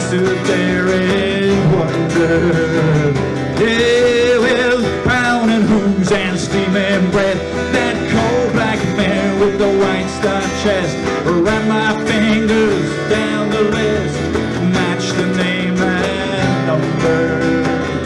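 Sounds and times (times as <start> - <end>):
acoustic folk band playing: 0.0 - 18.0
cajon beat: 0.0 - 18.0
mandolin: 0.0 - 18.0
strummed acoustic guitars: 0.0 - 18.0.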